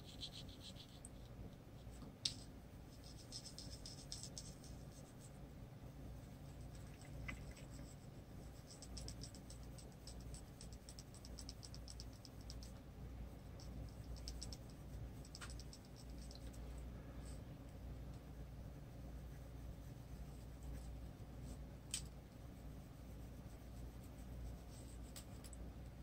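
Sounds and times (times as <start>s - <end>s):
low steady hum: 0.0s - 26.0s
coloured pencil scratching on paper: 2.9s - 5.3s.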